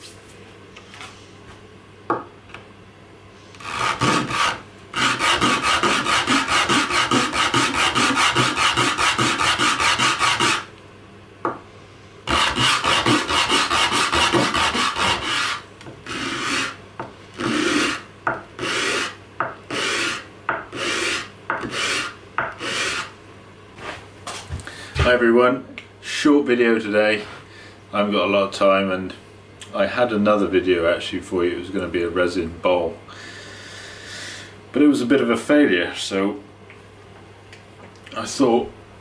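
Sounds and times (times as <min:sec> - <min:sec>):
wood sanded on sandpaper: 0:03.6 - 0:10.7, 0:12.3 - 0:16.8, 0:17.4 - 0:18.0, 0:18.6 - 0:23.1.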